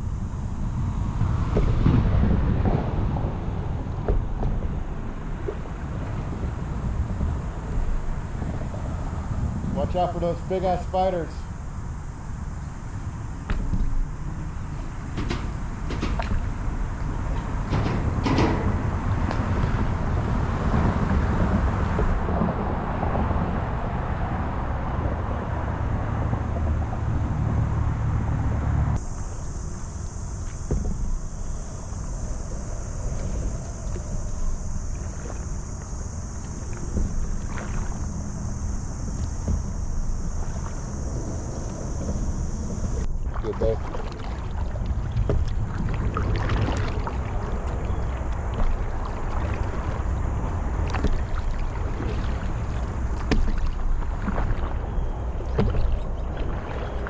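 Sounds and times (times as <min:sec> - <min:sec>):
wind and water rumble: 0:00.0 - 0:57.0
steady high hiss: 0:06.5 - 0:15.9, 0:28.4 - 0:43.2
light splashes: 0:30.4 - 0:57.0.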